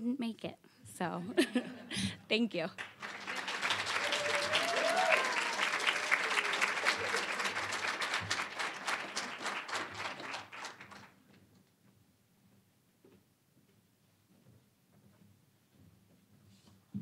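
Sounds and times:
audience applauding: 2.8 - 11.2.

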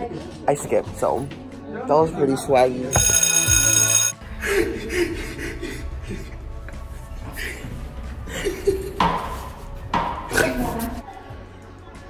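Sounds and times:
electronic ringing tone: 2.9 - 4.2.

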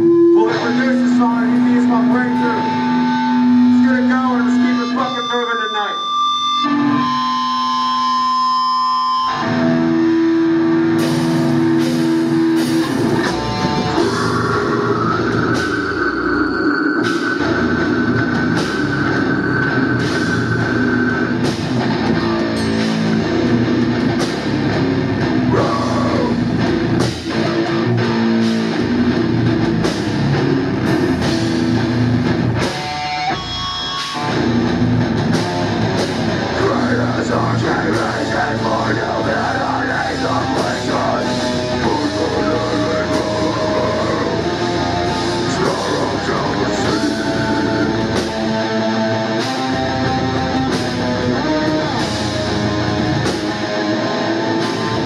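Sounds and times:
distorted electric guitars: 0.0 - 55.0
drum kit pounding: 10.0 - 55.0.

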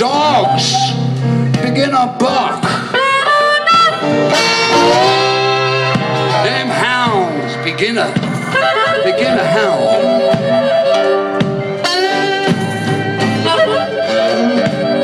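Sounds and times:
guitar accompaniment: 0.0 - 15.0
harmonica bending notes: 0.0 - 15.0.

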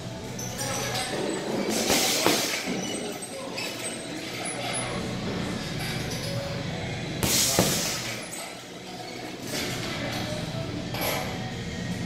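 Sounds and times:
steady background noise: 0.0 - 12.0
punch hitting heavy bag: 7.2 - 8.1.

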